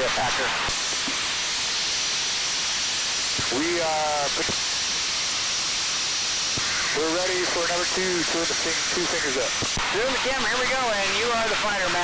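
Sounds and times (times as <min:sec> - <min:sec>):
aircraft cockpit engine and airflow: 0:03.1 - 0:05.1, 0:06.5 - 0:12.0.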